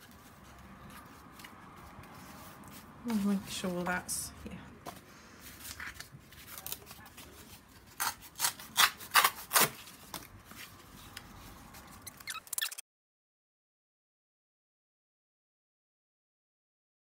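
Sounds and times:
cardboard rustling: 0.0 - 4.1, 4.8 - 12.1
cardboard scraping strokes: 0.0 - 4.1.

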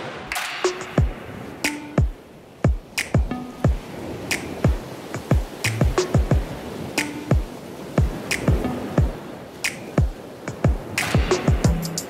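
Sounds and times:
finger snaps: 3.0 - 3.2, 4.3 - 4.6, 8.3 - 8.6, 9.6 - 10.0
deep kick-drum hits: 4.7 - 6.5, 10.7 - 11.8.

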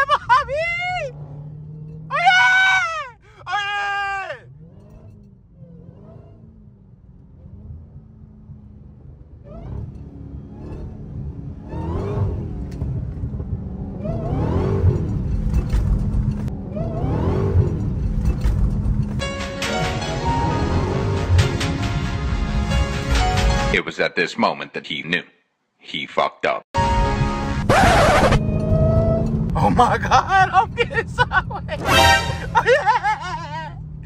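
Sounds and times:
car engine droning and revving: 0.0 - 2.4, 4.3 - 23.4, 26.8 - 34.0.

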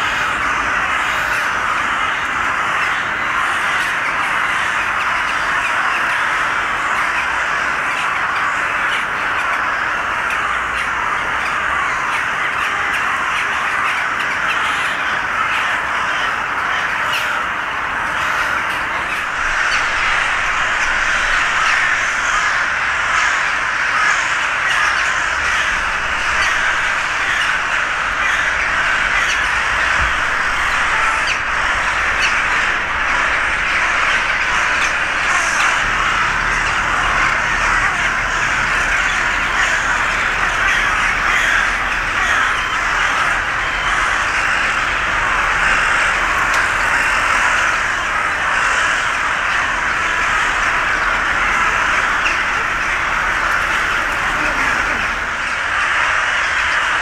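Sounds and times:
crows and rooks cawing: 0.0 - 57.0.

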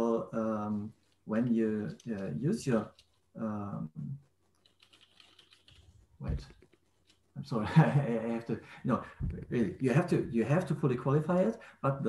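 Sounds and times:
faint keyboard typing: 1.0 - 7.3.

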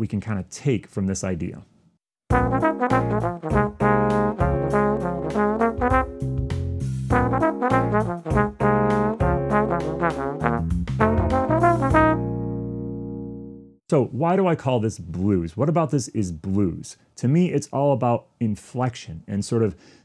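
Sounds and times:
trombone playing jazz line: 2.3 - 13.0
backing track with keys and bass: 2.3 - 13.8.

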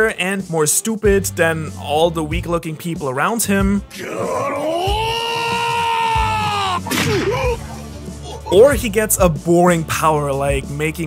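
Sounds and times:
man's long strained shout: 4.0 - 7.6.

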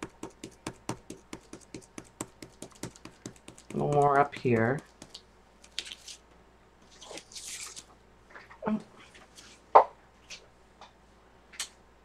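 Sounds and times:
art supplies tapping and clicking: 0.0 - 5.2.

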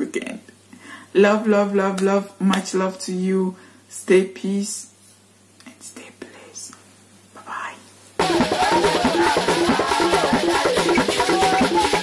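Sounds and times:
breaths: 0.7 - 1.2, 3.5 - 3.9
woman whispering: 5.6 - 7.9.

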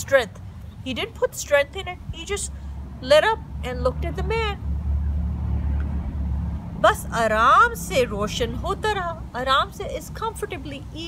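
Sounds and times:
woman speaking: 0.0 - 4.6, 6.8 - 11.0.

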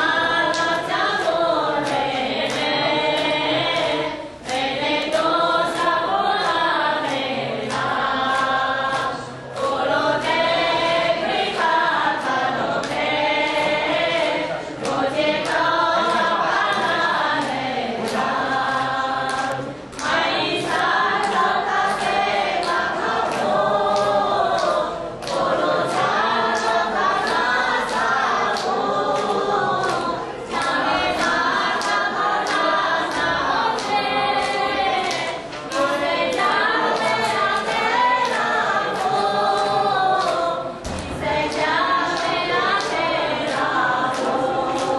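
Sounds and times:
group chanting: 0.0 - 44.9
sharp rhythmic strikes: 0.0 - 44.9.

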